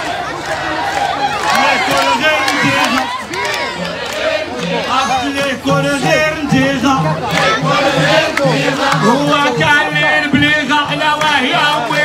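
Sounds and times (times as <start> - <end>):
men shouting and chanting: 0.0 - 12.0
sharp percussive strikes: 4.5 - 12.0.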